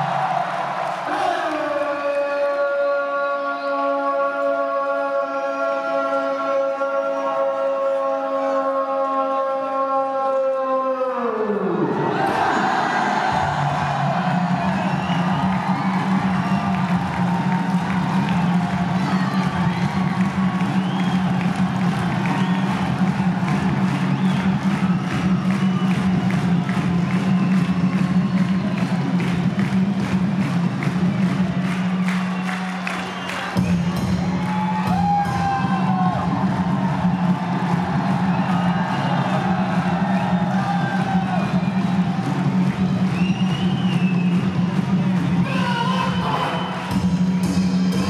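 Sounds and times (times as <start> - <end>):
large crowd cheering: 0.0 - 48.0
music through loudspeakers: 0.0 - 48.0.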